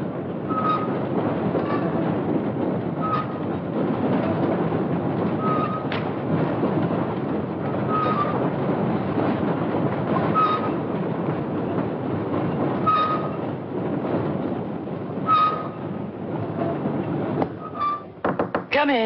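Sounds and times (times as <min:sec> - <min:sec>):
train rumbling on rails: 0:00.0 - 0:19.0.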